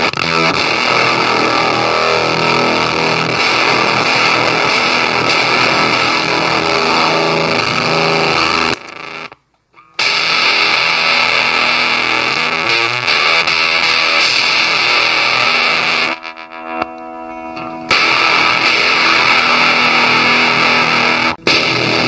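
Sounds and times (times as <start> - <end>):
distorted electric guitar: 0.0 - 22.0.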